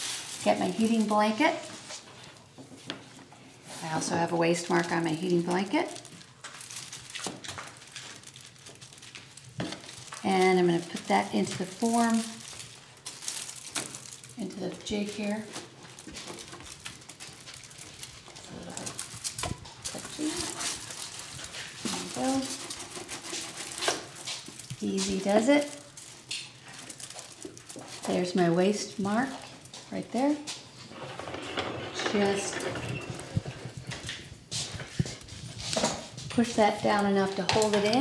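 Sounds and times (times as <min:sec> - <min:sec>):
metal sheets scraping and rustling: 0:17.4 - 0:25.6, 0:30.8 - 0:36.2.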